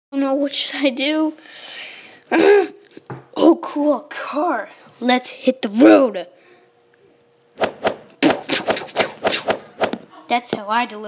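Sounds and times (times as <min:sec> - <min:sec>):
quick sharp knocks: 0:07.6 - 0:10.1.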